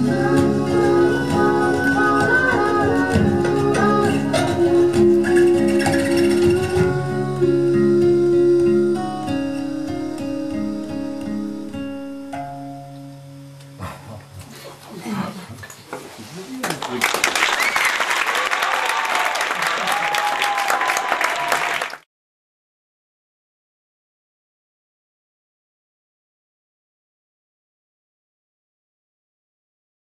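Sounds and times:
acoustic guitar playing: 0.0 - 14.7.

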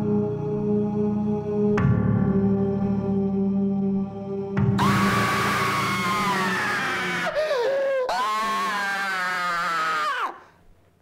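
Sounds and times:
man screaming: 4.8 - 10.5
wavering lower cry: 4.8 - 10.5.

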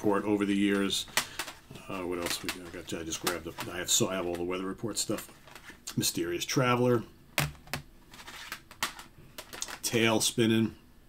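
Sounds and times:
plastic cases clacking and sliding: 0.6 - 5.8, 7.4 - 10.0.

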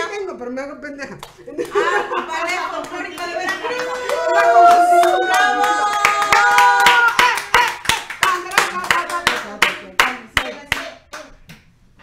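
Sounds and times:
people clapping: 1.2 - 11.6
laughter: 1.5 - 2.6.

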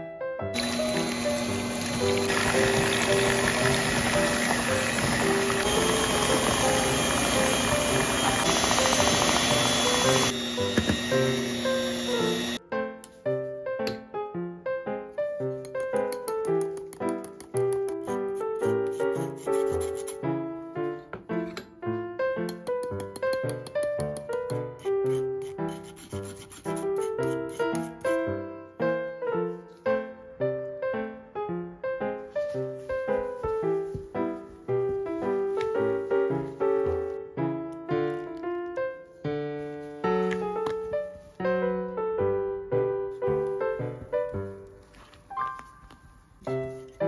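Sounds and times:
background music: 0.0 - 47.0
electric hand mixer whipping: 0.6 - 12.6
spoon rasping flour through sieve: 15.8 - 20.2, 22.6 - 28.2.

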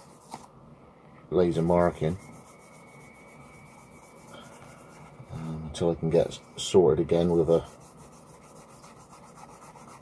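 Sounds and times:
thin high whine: 0.9 - 9.1
rubbing leather sheath: 7.6 - 10.0.

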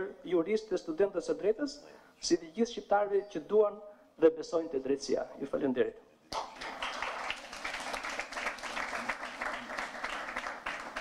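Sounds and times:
audience applause: 6.4 - 11.0.

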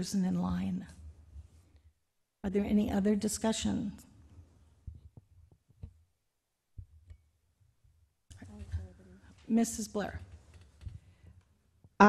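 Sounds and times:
person speaking: 8.3 - 10.2.

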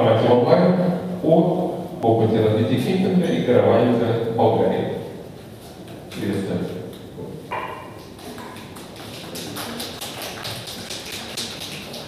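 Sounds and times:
sharp taps in a hall: 5.8 - 12.0.

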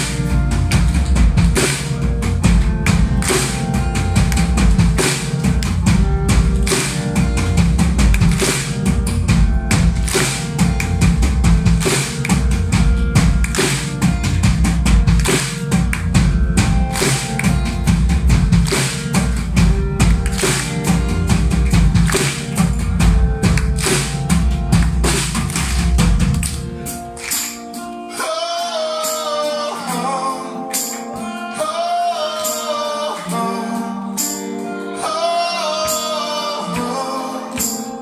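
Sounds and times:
drum kit beat: 0.0 - 34.6
acoustic guitar: 0.0 - 38.0.

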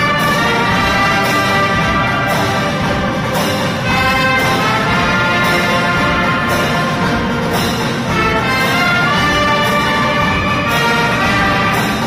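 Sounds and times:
brass band playing held chords: 0.0 - 12.0.

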